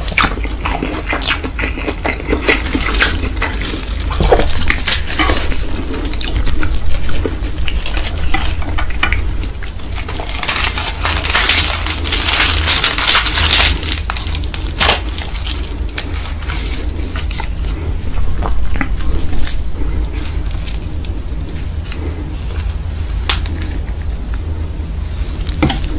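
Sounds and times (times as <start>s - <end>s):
steady low hum: 0.0s - 25.9s
seaweed sheets crackling: 2.2s - 25.9s.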